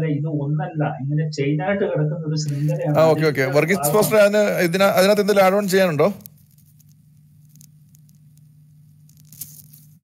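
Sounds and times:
faint low hum with hiss: 0.0s - 10.0s.

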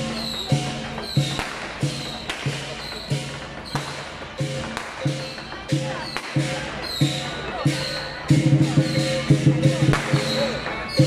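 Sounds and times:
cymbals and gong clashing: 0.0s - 11.0s
drum beaten fast: 0.0s - 11.0s.

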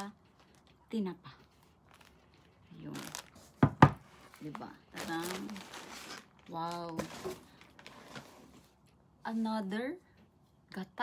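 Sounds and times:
rustling in cardboard box: 1.6s - 8.8s.

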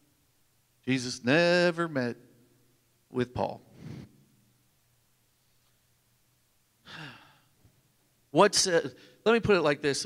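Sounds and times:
man sighing into microphone: 6.8s - 7.5s.

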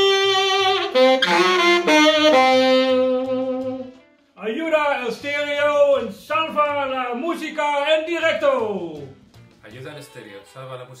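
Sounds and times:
tenor saxophone long note: 0.0s - 4.0s.

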